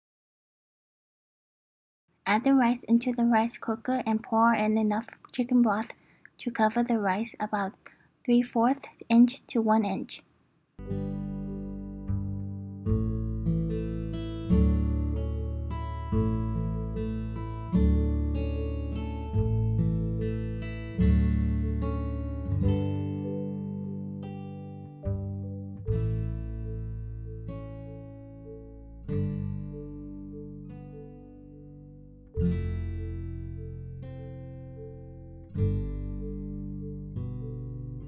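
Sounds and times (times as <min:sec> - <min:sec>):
acoustic guitar chords ringing: 0:10.8 - 0:38.0.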